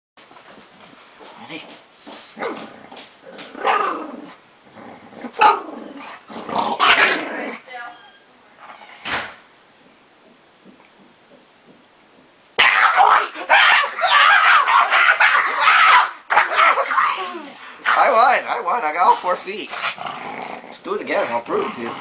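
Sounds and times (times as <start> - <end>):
dog growling: 2.4 - 7.7, 19.0 - 22.0
dog barking: 12.6 - 17.0.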